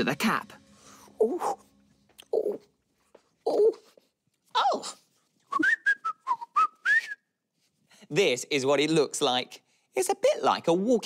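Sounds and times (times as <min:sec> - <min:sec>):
whistled flute-like tune: 0:05.5 - 0:07.4.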